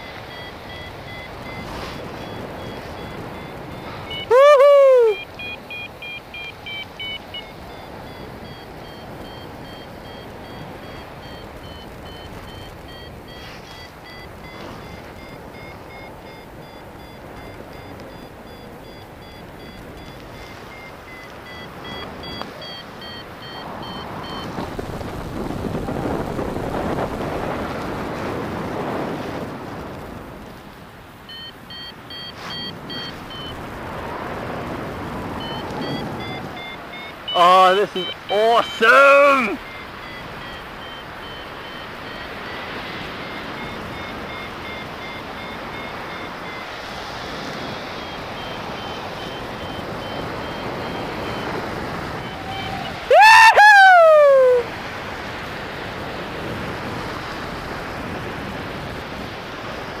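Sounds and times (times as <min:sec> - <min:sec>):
variometer short beeps: 0:00.0 - 0:24.6, 0:31.2 - 0:33.8, 0:34.4 - 0:53.1
wind noise on microphone: 0:00.0 - 0:37.4, 0:39.6 - 1:00.0.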